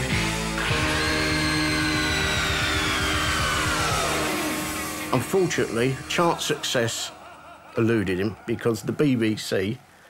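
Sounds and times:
long high wail sliding down: 0:00.6 - 0:07.1
fast pounding low beat: 0:01.4 - 0:06.7.

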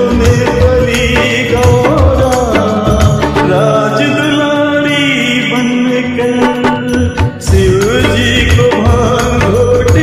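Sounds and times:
devotional song with held note: 0:00.0 - 0:10.0.

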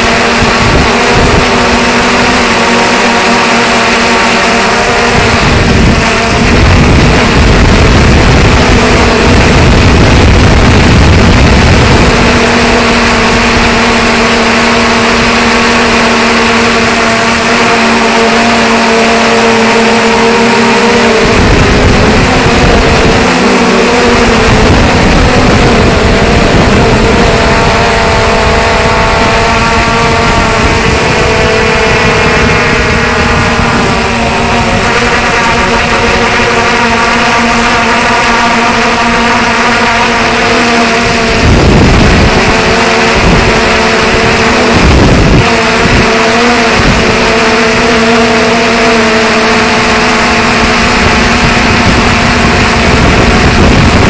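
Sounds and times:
drone propellers whining: 0:00.0 - 0:54.0.

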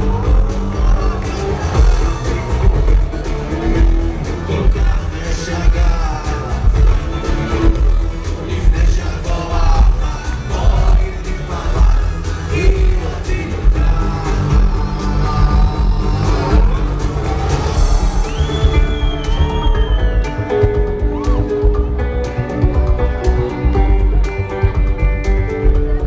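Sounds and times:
man singing: 0:00.0 - 0:21.6
electric guitar: 0:00.0 - 0:26.0
heavy bass beat: 0:00.0 - 0:26.0.

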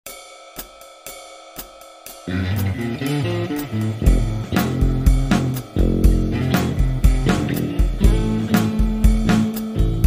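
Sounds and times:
cymbal strikes: 0:00.1 - 0:10.0.

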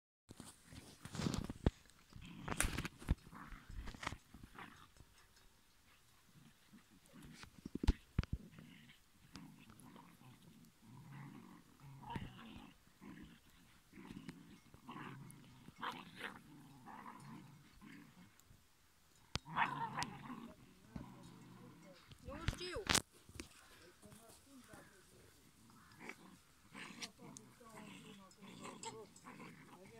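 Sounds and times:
young dogs growling: 0:00.4 - 0:18.6, 0:19.3 - 0:29.9.

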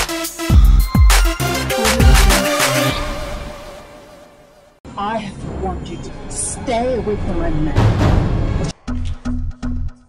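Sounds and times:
intro music: 0:00.0 - 0:04.8.

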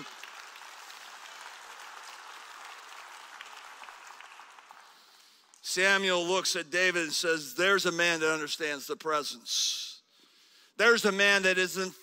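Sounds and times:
congregation applauding faintly: 0:00.0 - 0:05.6.

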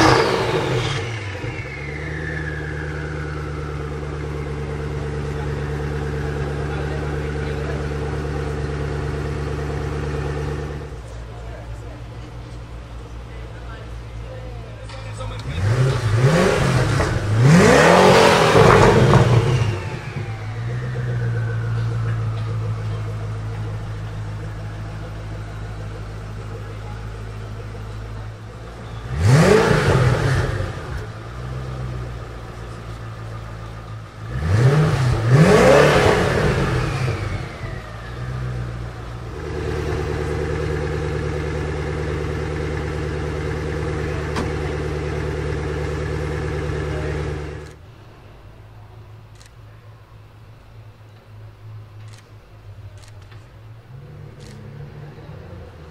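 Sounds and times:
turbo whistle: 0:00.0 - 0:03.8
car engine revving: 0:00.0 - 0:11.2, 0:14.8 - 0:47.8, 0:53.0 - 0:55.9
car engine idling: 0:00.0 - 0:55.9.

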